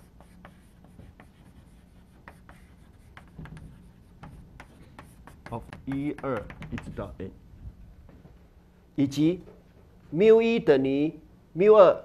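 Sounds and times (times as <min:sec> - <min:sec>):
chalk writing on chalkboard: 0:00.0 - 0:07.2.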